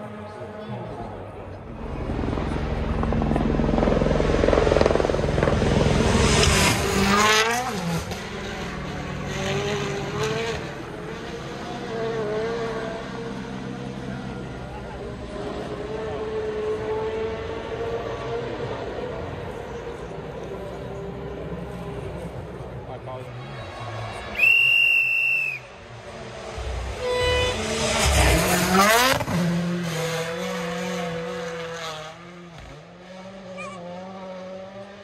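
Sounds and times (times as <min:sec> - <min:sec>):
rally car engine passing: 0:00.0 - 0:24.4, 0:25.6 - 0:35.0.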